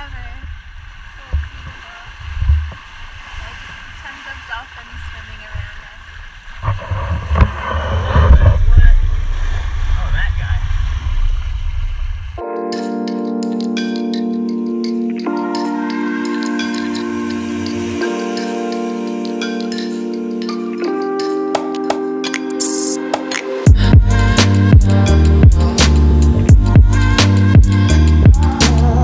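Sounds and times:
wind rumble on microphone: 0:00.0 - 0:12.4
sustained chords with bell tones: 0:12.4 - 0:29.0.

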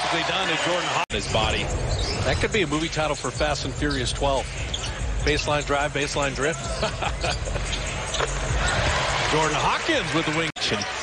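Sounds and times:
arena crowd noise: 0:00.0 - 0:01.7, 0:02.3 - 0:11.0.

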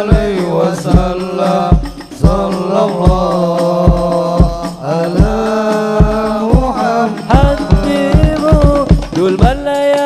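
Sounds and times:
deep bass drum beating: 0:00.0 - 0:09.6
frame drums: 0:00.0 - 0:10.0
men chanting through microphones: 0:00.0 - 0:10.0.

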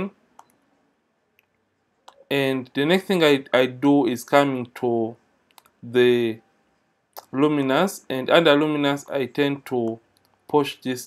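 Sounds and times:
person speaking: 0:00.0 - 0:00.2, 0:02.1 - 0:06.4, 0:07.2 - 0:11.0
computer mouse clicks: 0:00.4 - 0:00.6, 0:05.5 - 0:05.8.

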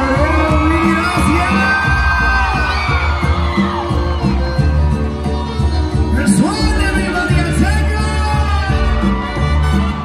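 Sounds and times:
live band music with singing: 0:00.0 - 0:10.0.

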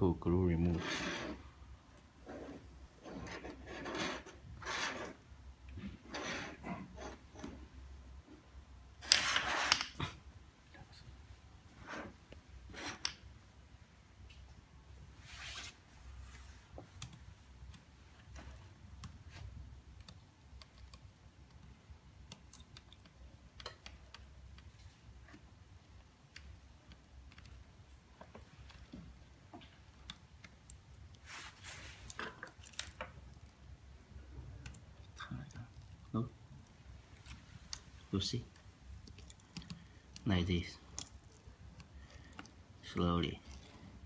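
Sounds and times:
metal mold scraping on wooden desk: 0:00.7 - 0:01.4, 0:06.0 - 0:07.6.

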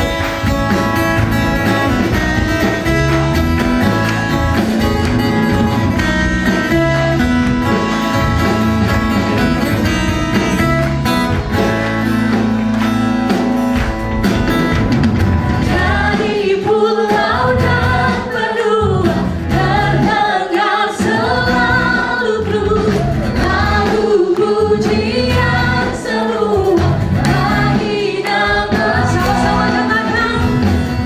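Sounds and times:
instrumental accompaniment: 0:00.0 - 0:31.0
group singing praise song: 0:15.6 - 0:31.0.

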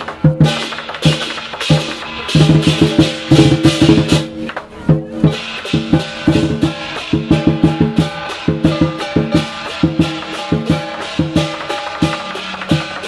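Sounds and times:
big drum beaten: 0:00.0 - 0:13.0
crashing cymbals: 0:00.2 - 0:04.4, 0:05.2 - 0:13.0.

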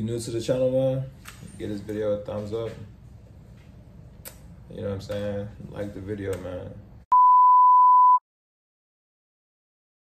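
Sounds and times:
steady electronic beep: 0:07.1 - 0:08.2.

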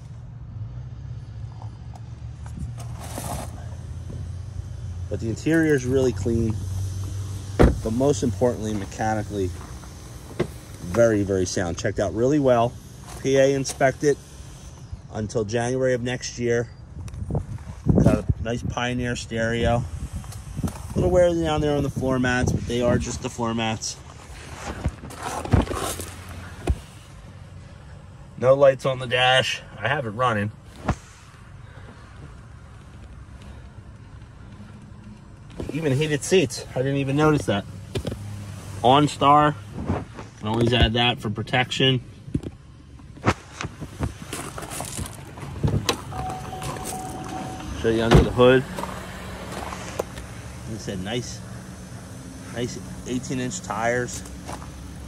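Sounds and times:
car engine idling: 0:00.0 - 0:17.2, 0:31.3 - 0:55.0.

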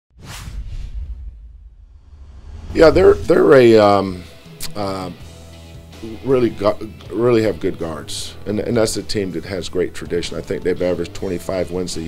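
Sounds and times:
whoosh with low rumble: 0:00.1 - 0:03.8.

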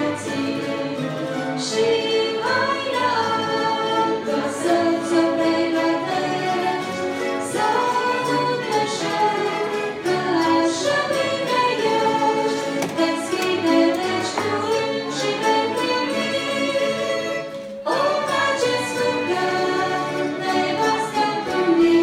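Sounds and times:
string orchestra slow melody: 0:00.0 - 0:22.0.

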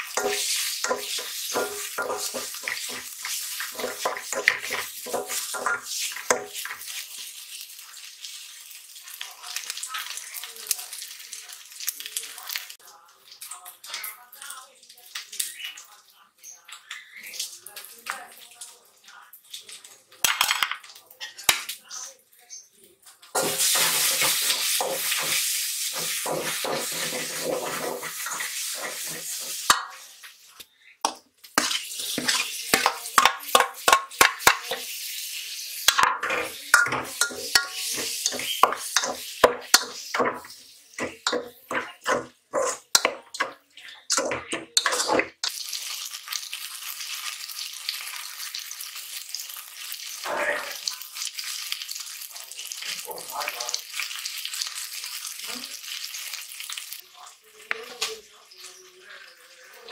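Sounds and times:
curry sizzling in oil: 0:00.0 - 0:59.9
spoon scraping metal pot: 0:26.0 - 0:30.0, 0:31.1 - 0:34.9, 0:35.9 - 0:45.5.

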